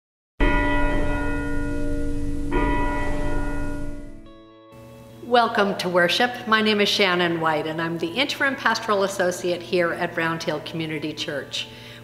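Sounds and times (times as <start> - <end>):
church bell tolling: 0.4 - 4.7.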